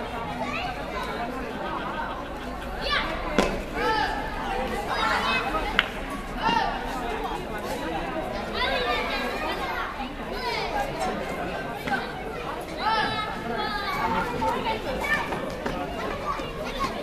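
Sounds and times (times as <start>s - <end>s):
high children's voices: 0.0s - 7.4s, 8.3s - 17.0s
crowd chattering and calling out: 0.0s - 17.0s.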